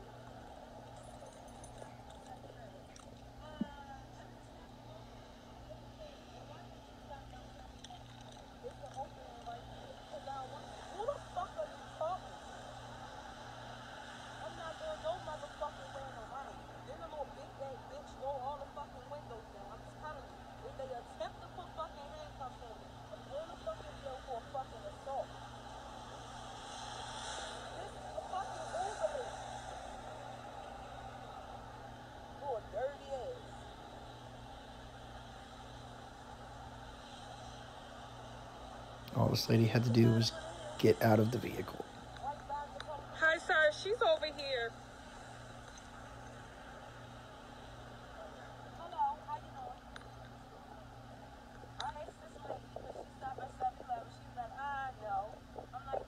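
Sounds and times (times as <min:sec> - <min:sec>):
faint indistinct voices: 0:00.0 - 0:56.0
street background noise: 0:00.0 - 0:56.0.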